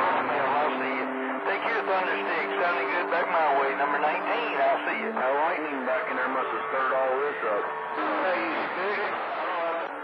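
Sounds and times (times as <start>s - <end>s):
voices over radio speaker: 0.0s - 10.0s.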